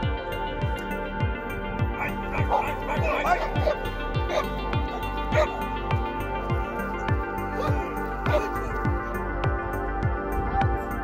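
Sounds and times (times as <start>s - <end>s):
background music with beat: 0.0s - 11.0s
dog barking: 2.0s - 5.8s, 7.5s - 8.8s.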